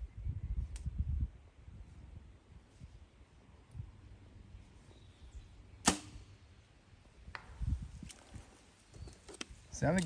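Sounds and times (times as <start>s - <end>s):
distant arrow hitting target: 5.8s - 6.3s.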